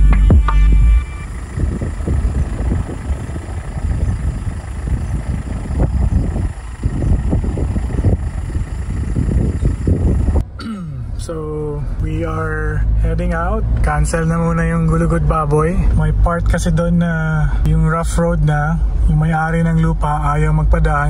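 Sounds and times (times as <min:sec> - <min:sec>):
low uneven rumbling: 0:01.2 - 0:17.6.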